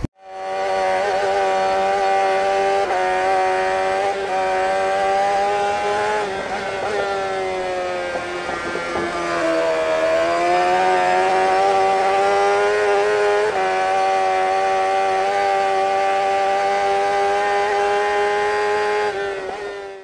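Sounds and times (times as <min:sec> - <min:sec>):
engine at high revs: 0:00.0 - 0:20.0.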